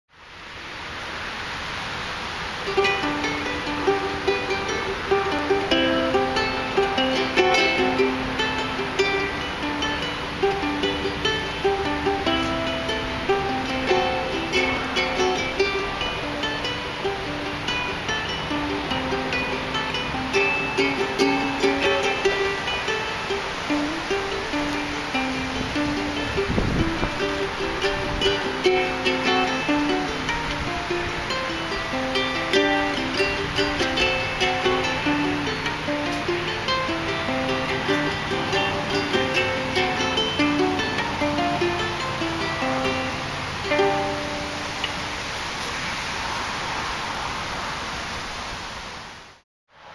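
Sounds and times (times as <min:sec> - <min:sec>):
ukulele plucked melody: 0:02.5 - 0:45.8.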